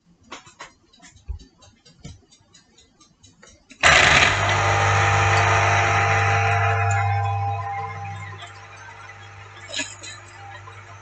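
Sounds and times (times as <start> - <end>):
electric juicer motor hum: 3.8 - 11.0.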